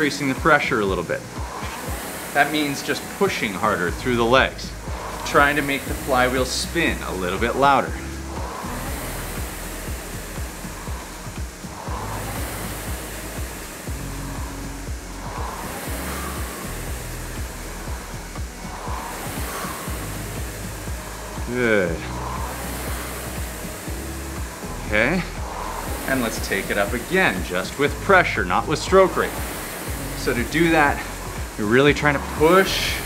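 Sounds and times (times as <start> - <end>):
background music with bass: 0.0 - 33.0
rowing machine flywheel whooshing: 0.0 - 33.0.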